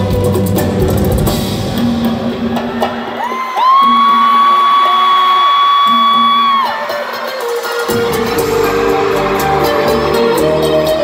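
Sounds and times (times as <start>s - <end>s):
live band with electric guitars: 0.0s - 11.0s
person whooping: 3.1s - 7.0s.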